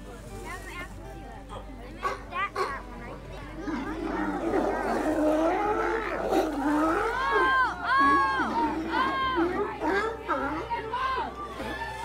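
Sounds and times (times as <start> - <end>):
sea lions barking: 2.0 - 2.8, 3.7 - 12.0.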